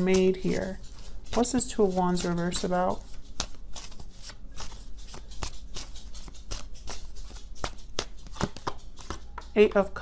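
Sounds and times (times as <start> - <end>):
cards being shuffled: 0.0 - 9.5.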